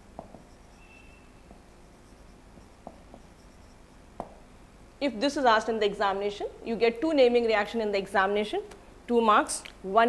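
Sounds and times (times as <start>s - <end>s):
marker pen writing on whiteboard: 0.2s - 3.8s.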